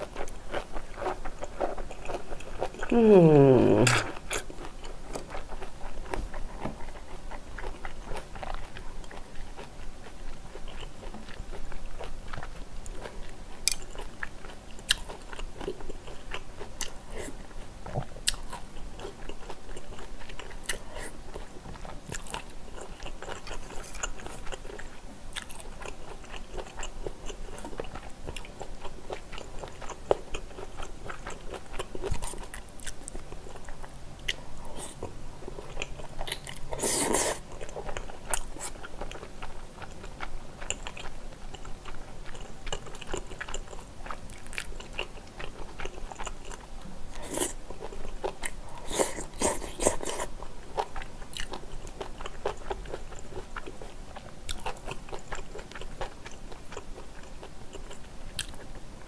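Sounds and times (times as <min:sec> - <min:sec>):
person chewing and biting: 0:17.9 - 0:58.6.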